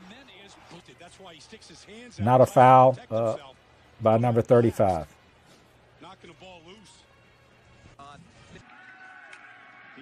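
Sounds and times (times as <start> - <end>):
narration: 0.0 - 8.5.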